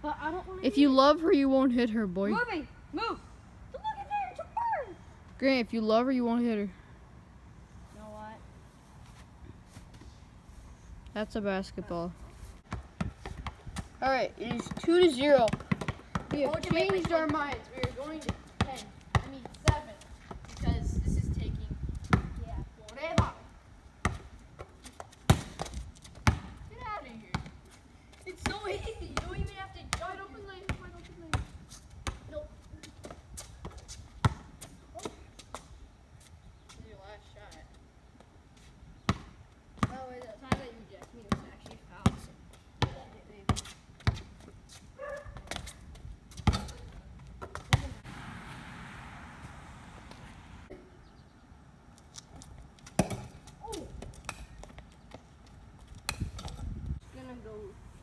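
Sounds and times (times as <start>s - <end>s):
basketball bouncing on concrete: 12.6s - 20.8s, 21.9s - 23.4s, 24.0s - 27.6s, 28.3s - 35.6s, 39.1s - 44.5s, 45.1s - 48.1s, 52.8s - 55.2s.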